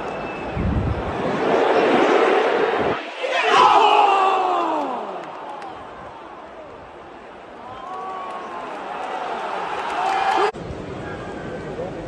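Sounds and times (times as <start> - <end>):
stadium crowd ooh: 0.0 - 11.8.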